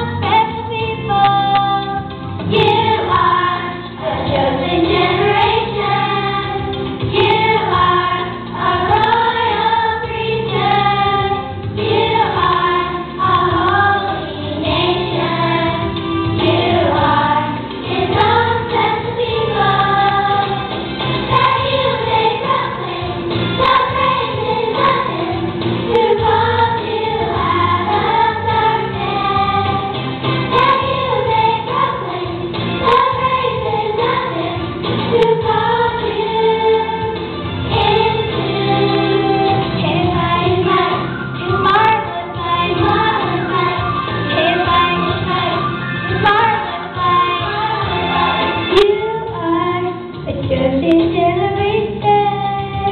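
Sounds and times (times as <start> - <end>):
instrumental accompaniment: 0.0 - 52.9
girl singing into microphone: 37.8 - 47.9, 48.8 - 52.9.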